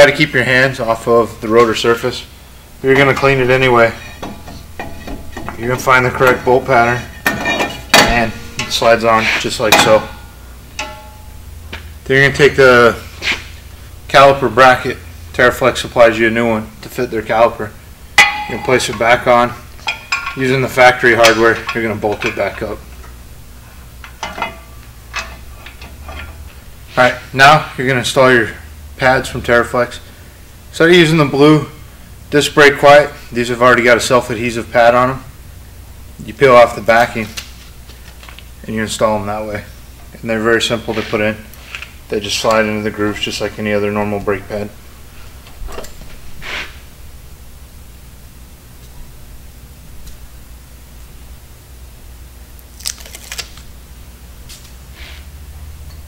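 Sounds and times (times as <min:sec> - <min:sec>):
steady low hum: 0:00.0 - 0:56.0
short soft hiss: 0:46.4 - 0:46.9.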